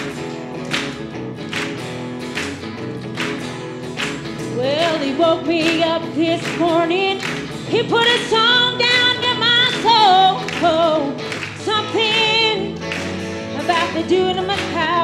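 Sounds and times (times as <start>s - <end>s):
bass guitar: 0.0s - 15.0s
guitars: 0.0s - 15.0s
woman singing with vibrato: 4.5s - 12.8s, 13.5s - 15.0s.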